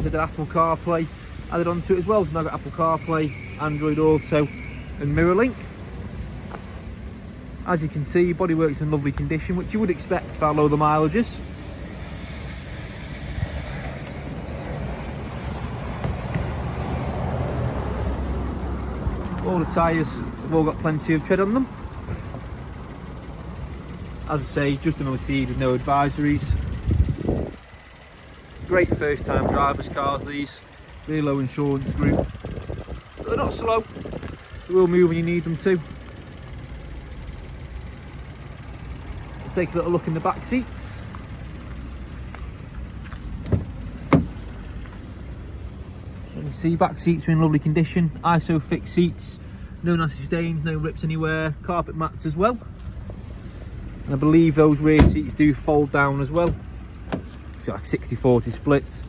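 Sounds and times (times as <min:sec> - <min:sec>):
vehicle engine rumbling: 0:00.0 - 0:59.0.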